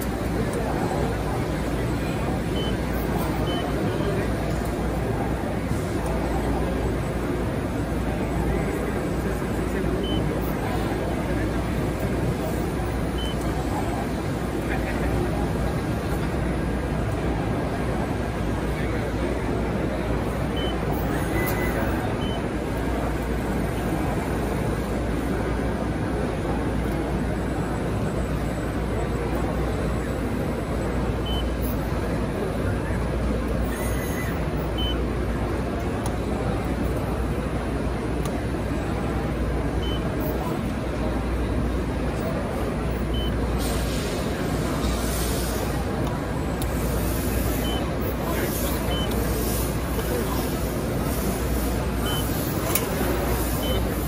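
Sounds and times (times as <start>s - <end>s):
indistinct crowd chatter: 0.0s - 54.0s
faint short high beeps: 31.2s - 31.6s, 47.6s - 47.9s.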